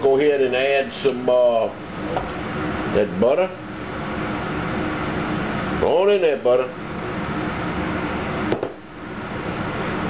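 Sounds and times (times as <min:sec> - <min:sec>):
steady background hum: 0:00.0 - 0:10.0
glass cup knocking on countertop: 0:08.5 - 0:08.8.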